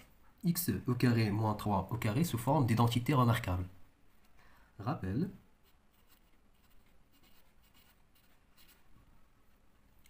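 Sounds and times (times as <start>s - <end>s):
marker scratching on paper: 5.6s - 8.9s.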